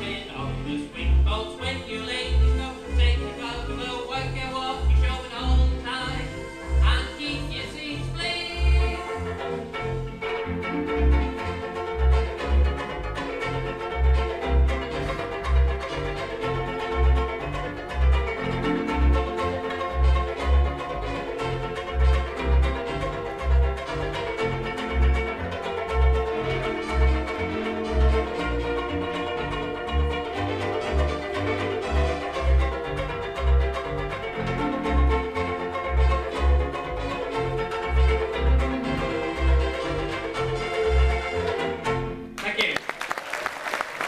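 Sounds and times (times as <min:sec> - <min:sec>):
banjo ukulele strumming: 0:00.0 - 0:42.4
bass notes: 0:00.0 - 0:42.4.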